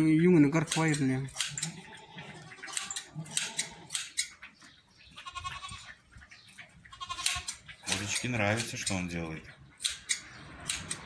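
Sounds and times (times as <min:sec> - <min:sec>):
hand shears snipping hair: 0:00.6 - 0:01.8, 0:02.7 - 0:04.3, 0:07.2 - 0:09.0, 0:09.8 - 0:11.0
goat bleating: 0:01.4 - 0:04.2, 0:05.0 - 0:06.0, 0:06.8 - 0:07.7.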